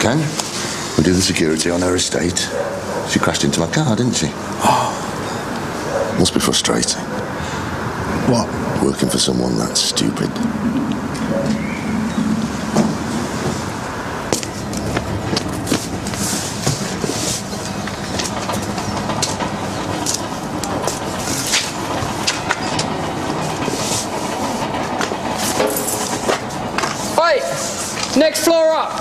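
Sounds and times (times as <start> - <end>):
steady rumbling din: 6.8 - 26.8
clacks and knocks: 10.3 - 27.0.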